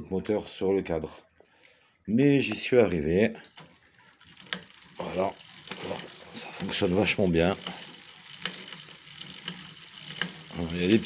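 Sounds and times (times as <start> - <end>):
bicycle chain rattling: 3.5 - 11.0
chain clicks: 3.5 - 11.0.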